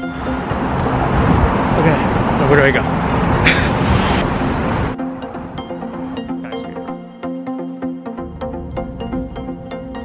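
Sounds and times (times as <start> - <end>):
cars passing on busy street: 0.0 - 7.1.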